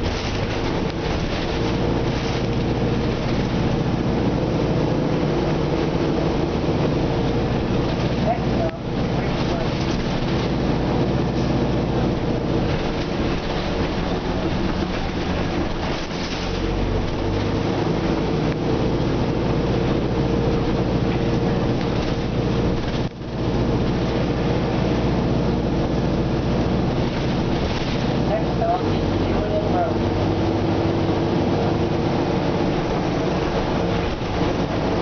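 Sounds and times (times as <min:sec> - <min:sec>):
bus engine hum and road noise: 0:00.0 - 0:35.0.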